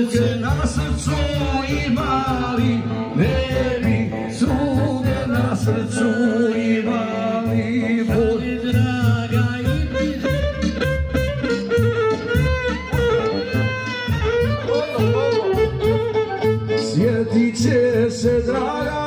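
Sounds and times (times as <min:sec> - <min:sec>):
man singing into microphone: 0:00.0 - 0:10.8, 0:16.7 - 0:19.0
keyboard backing: 0:00.0 - 0:19.0
steady bass beat: 0:07.5 - 0:19.0
violin playing: 0:09.6 - 0:19.0.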